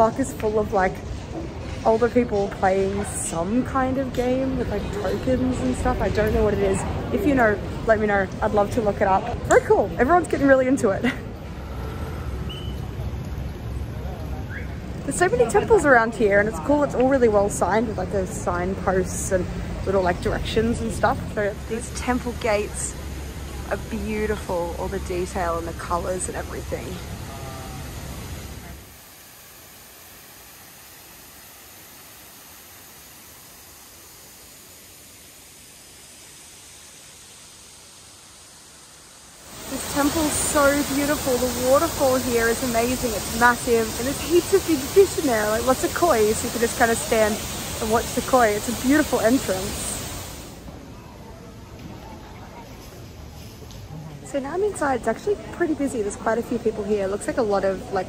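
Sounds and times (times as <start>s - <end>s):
traffic rumble: 0.0s - 29.1s, 39.5s - 58.0s
faint steady hiss: 0.0s - 58.0s
waterfall rushing: 20.8s - 50.7s
faint distant voices: 50.7s - 58.0s.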